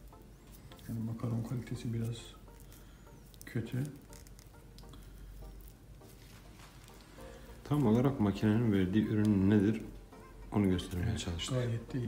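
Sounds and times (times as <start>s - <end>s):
cigarette paper crinkling: 0.0s - 9.5s.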